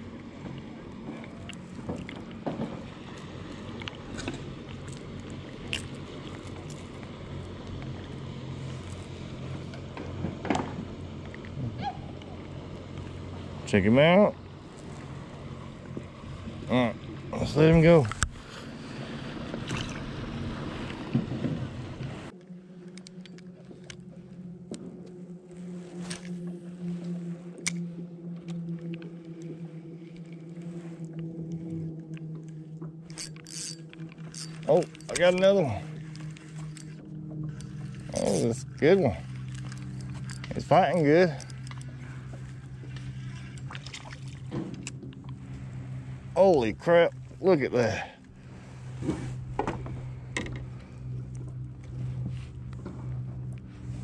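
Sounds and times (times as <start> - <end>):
motor drone: 0.0 - 54.0
steady low hum: 0.0 - 54.0
fishing reel clicks and taps: 33.1 - 35.2, 41.3 - 41.9.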